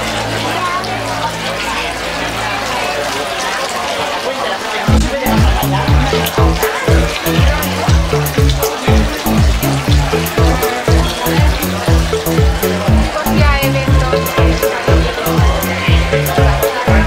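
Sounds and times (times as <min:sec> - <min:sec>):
electronic dance music: 0:04.9 - 0:17.0.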